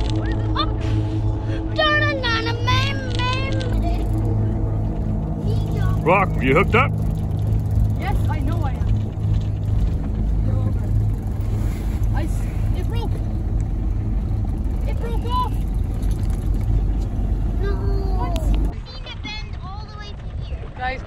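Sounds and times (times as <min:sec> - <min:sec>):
boat engine humming: 0:00.0 - 0:21.0.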